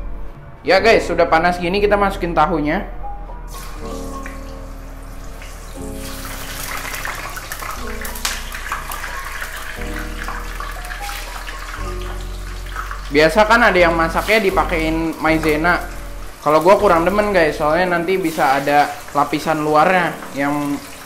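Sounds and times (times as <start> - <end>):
background music: 0.0 - 21.0
tofu sizzling in hot oil: 3.5 - 21.0.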